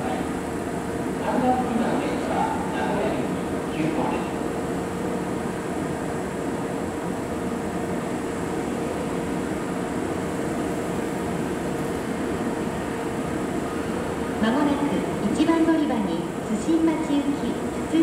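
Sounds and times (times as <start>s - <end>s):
electric train equipment humming: 0.0s - 18.0s.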